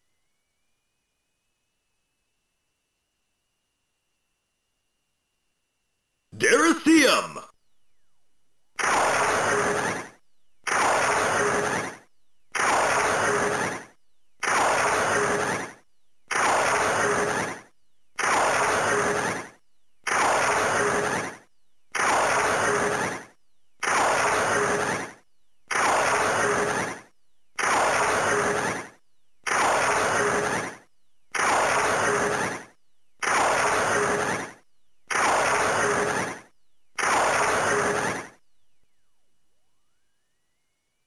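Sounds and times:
toy electronic blast sound effect: 33.2s - 38.4s.

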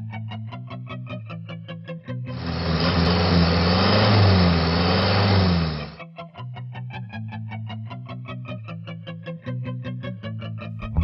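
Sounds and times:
vehicle engine revving: 2.4s - 6.0s
guitar-led pop music: 7.8s - 11.0s.

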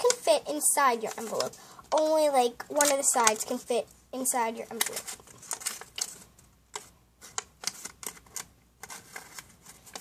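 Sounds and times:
paper rustling: 0.0s - 3.6s, 4.7s - 10.0s
small sharp paper clicks: 2.7s - 3.4s, 4.7s - 10.0s.

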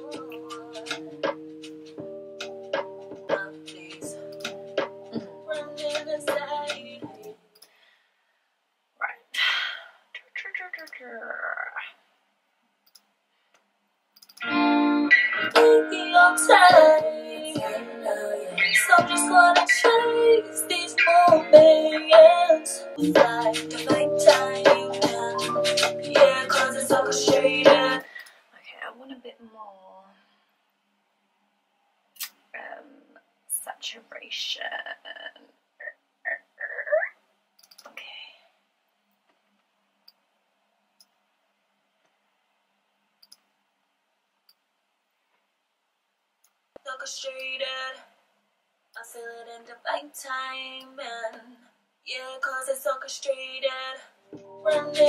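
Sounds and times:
quick clicks: 14.2s - 14.4s, 37.6s - 38.0s
person making vocal sounds: 34.6s - 37.2s.

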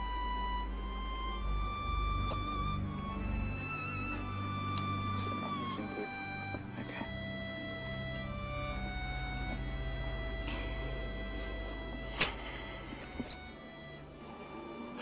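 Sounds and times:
electronic keyboard string chords: 0.0s - 14.4s.

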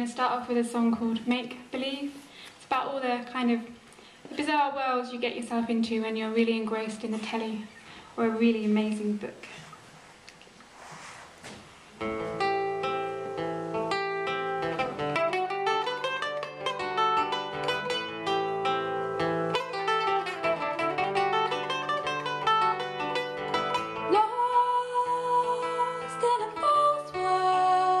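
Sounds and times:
acoustic guitar and mandolin playing: 12.0s - 28.0s.

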